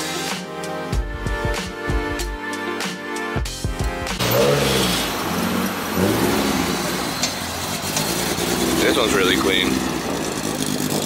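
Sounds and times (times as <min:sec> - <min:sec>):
car engine revving: 0:04.0 - 0:11.0.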